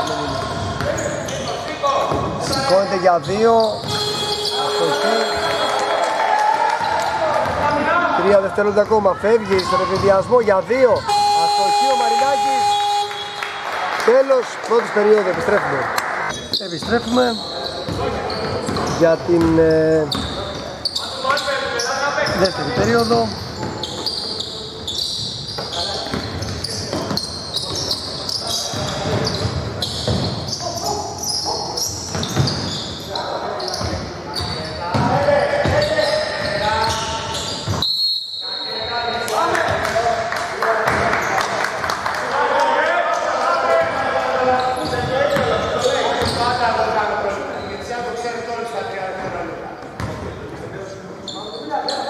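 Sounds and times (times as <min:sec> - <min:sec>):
players calling out: 0:02.4 - 0:32.5
basketball bouncing on court: 0:25.6 - 0:27.8, 0:28.6 - 0:30.5, 0:32.1 - 0:32.7, 0:33.8 - 0:37.0.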